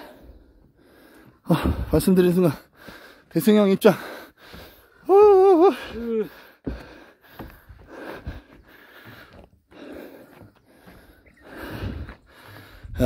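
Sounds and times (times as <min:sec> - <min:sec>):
person breathing hard: 0:00.0 - 0:02.0, 0:02.6 - 0:03.3, 0:03.9 - 0:13.0.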